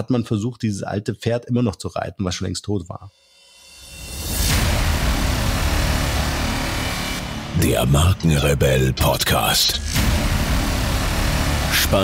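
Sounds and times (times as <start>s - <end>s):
rushing noise effect: 3.7s - 8.4s, 9.7s - 12.0s
low bass: 4.2s - 12.0s.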